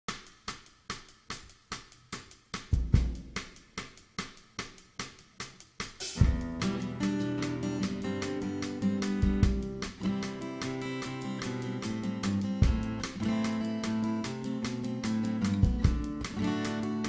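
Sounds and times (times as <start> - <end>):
drum kit ticking beat: 0.1 - 17.0
kick drum thump: 6.2 - 6.6, 15.6 - 16.2
strummed acoustic guitar: 6.2 - 17.0.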